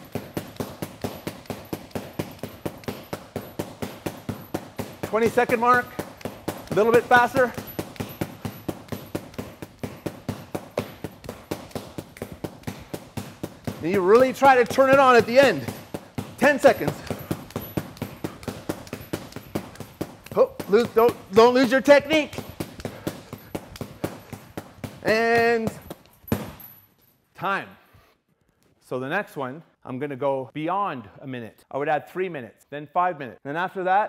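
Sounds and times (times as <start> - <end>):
stick striking hanging bag: 0.0 - 26.9.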